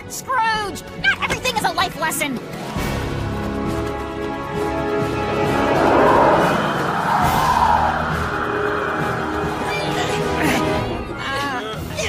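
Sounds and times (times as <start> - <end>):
background music: 0.0 - 12.0
loud rushing sound effect: 4.5 - 9.6.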